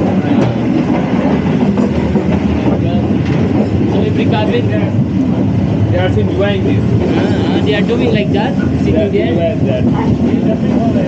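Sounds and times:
train wheels rumbling and rattling: 0:00.0 - 0:11.0.

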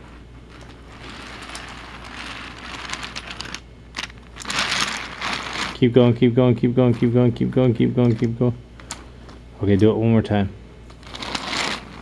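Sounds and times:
toy train wheels rattling on track: 0:00.0 - 0:05.8, 0:11.0 - 0:12.0.

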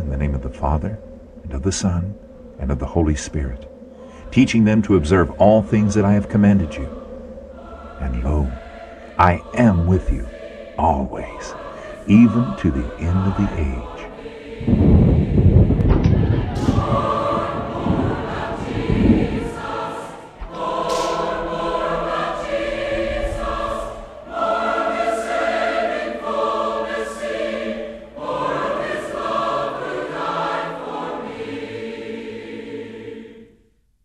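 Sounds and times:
low musical accompaniment: 0:00.0 - 0:33.0
choir singing held chords: 0:00.0 - 0:33.8.

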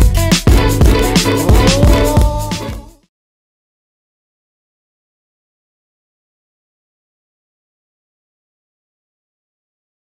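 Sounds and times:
background music: 0:00.0 - 0:03.1.

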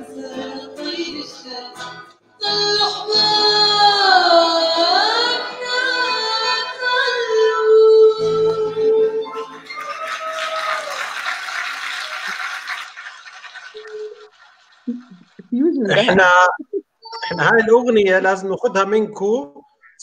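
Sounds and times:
woman singing: 0:00.0 - 0:09.5
acoustic guitar: 0:00.0 - 0:10.6, 0:12.2 - 0:17.9
audience applause: 0:09.2 - 0:16.2.

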